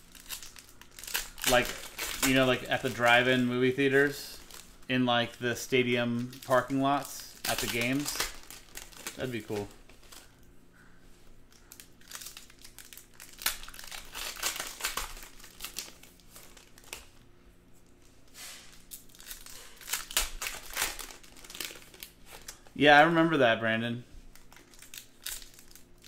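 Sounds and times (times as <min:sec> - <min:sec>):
foil wrappers crinkling and tearing: 0:00.0 - 0:10.5, 0:11.5 - 0:22.8, 0:24.2 - 0:26.0.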